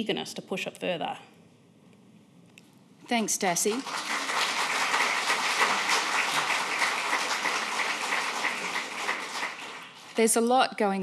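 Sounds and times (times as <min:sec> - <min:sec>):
audience applauding: 0:03.6 - 0:10.2.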